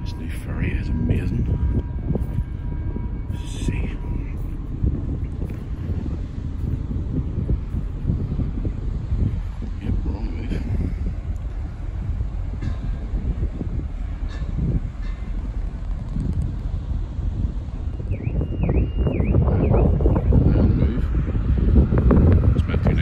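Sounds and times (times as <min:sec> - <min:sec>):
steady low rumble: 0:00.0 - 0:23.0
wind buffeting microphone: 0:00.0 - 0:23.0.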